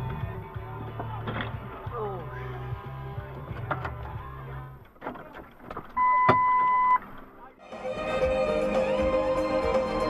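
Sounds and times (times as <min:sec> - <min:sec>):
car running and road noise: 0:00.0 - 0:07.6
electronic censor beep: 0:06.0 - 0:07.0.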